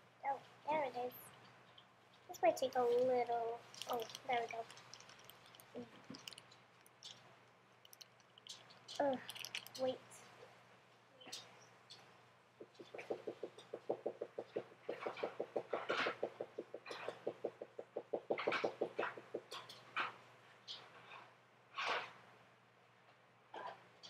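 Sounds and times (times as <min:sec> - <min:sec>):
scattered clicks: 0:01.3 - 0:10.0.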